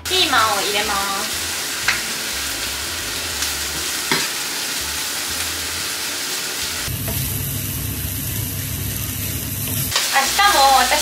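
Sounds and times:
meat and peppers sizzling in a pan: 0.0s - 11.0s.

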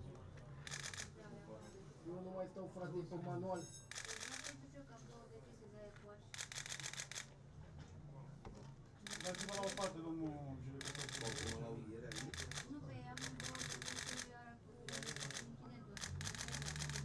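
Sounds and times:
camera shutters clicking: 0.7s - 1.1s, 3.9s - 4.6s, 6.4s - 7.3s, 9.1s - 10.0s, 10.8s - 14.3s, 14.9s - 17.0s.

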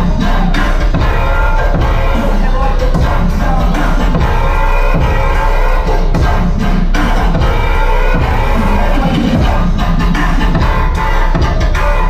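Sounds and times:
loud electronic bass music: 0.0s - 12.0s.

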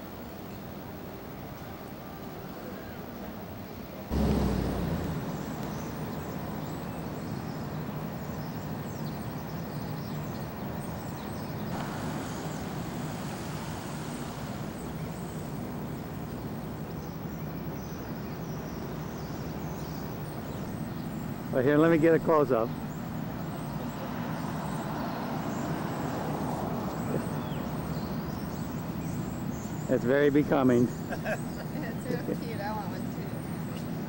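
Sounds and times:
distant road traffic rumble: 0.0s - 34.0s.

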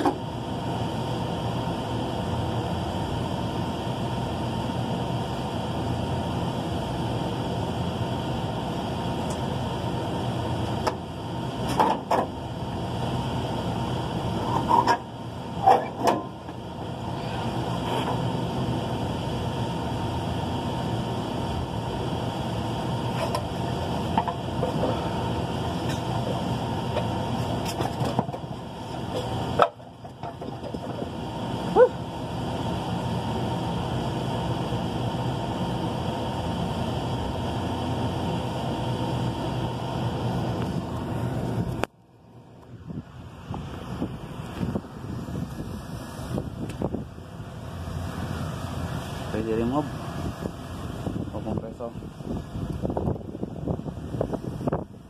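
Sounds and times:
air conditioning machinery hum: 0.0s - 55.0s.

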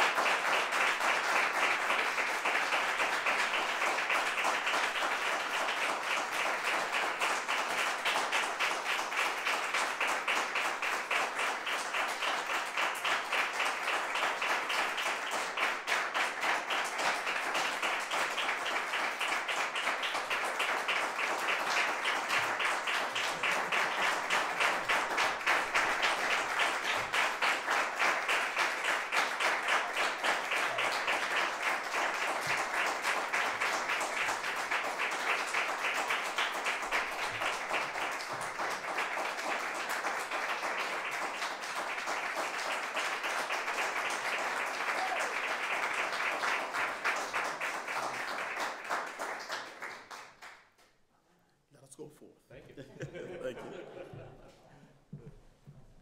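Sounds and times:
audience applauding: 0.0s - 50.8s.

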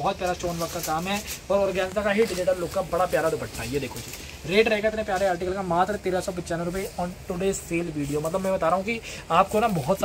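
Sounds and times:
man speaking rapidly: 0.0s - 10.0s.

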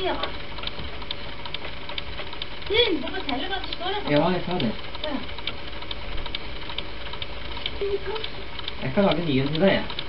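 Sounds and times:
faint ticks: 0.0s - 10.0s
low mains hum: 0.0s - 10.0s.

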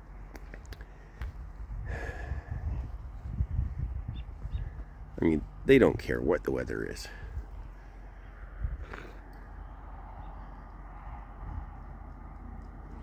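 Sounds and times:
wind noise on microphone: 0.6s - 5.2s, 8.4s - 9.2s, 9.9s - 13.0s.

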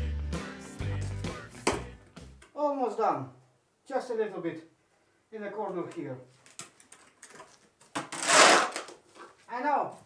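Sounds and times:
shovel scraping barn floor: 8.1s - 9.0s.

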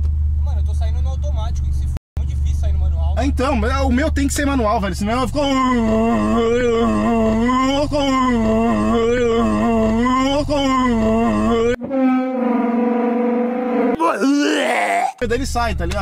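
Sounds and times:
low rumble inside car: 0.0s - 11.8s
man wailing: 5.3s - 11.8s, 14.0s - 15.2s
steady wailing voice: 5.3s - 11.8s, 13.9s - 15.2s.

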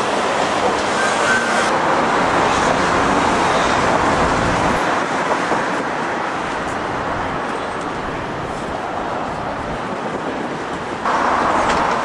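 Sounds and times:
road traffic passing cars: 0.0s - 12.0s.

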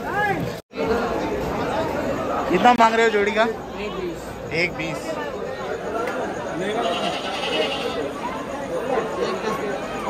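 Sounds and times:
men talking: 0.1s - 9.9s
goat bleating: 6.8s - 8.0s.

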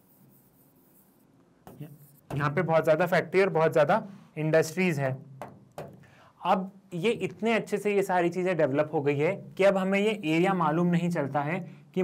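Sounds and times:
stylus writing on glass screen: 0.0s - 3.0s.

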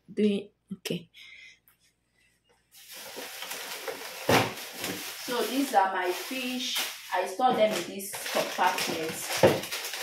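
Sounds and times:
plastic bags rustling: 2.7s - 10.0s.

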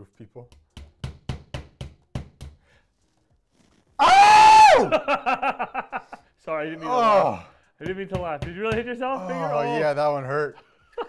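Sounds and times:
hammer knocking: 7.8s - 9.1s.

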